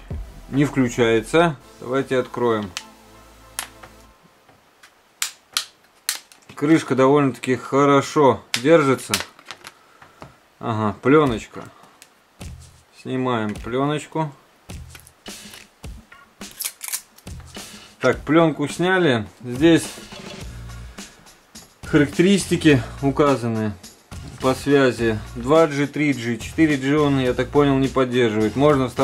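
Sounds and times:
faint background music: 0.0s - 5.3s, 10.6s - 29.0s
plastic film peeling and crinkling: 4.8s - 6.6s, 16.5s - 17.3s.

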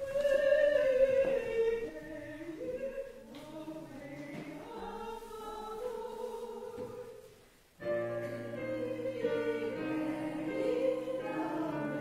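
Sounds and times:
congregation singing a hymn: 0.6s - 12.0s.

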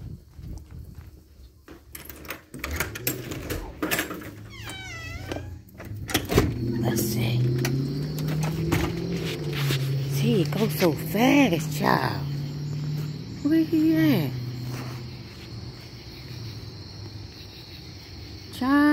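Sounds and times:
handling clicks and knocks: 1.7s - 4.6s
low engine drone outside: 2.7s - 17.4s.

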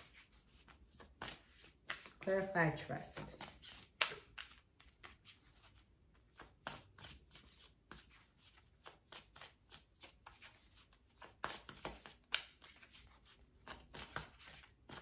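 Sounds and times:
cards being shuffled: 0.0s - 2.3s, 3.2s - 15.0s.

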